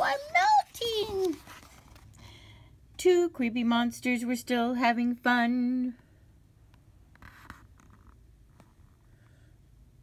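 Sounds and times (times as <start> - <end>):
paper page turning: 0.1 - 2.1.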